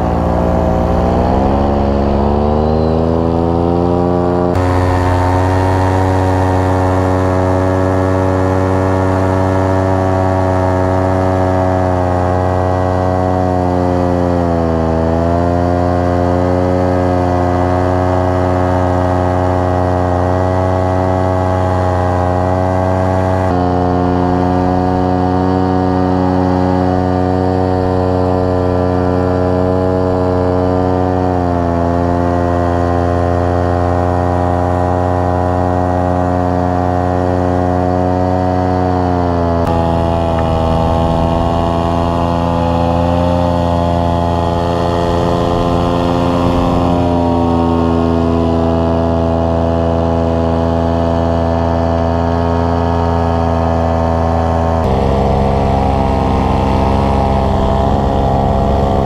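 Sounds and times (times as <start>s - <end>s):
paramotor engine and propeller: 0.0s - 59.0s.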